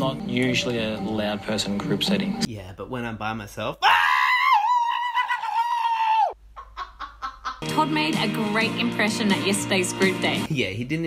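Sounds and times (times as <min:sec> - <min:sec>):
man screaming: 0:03.8 - 0:06.4.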